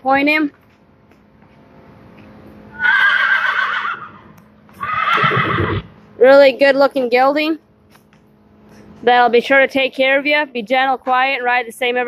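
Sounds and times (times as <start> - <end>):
horse whinnying: 2.7 - 5.9.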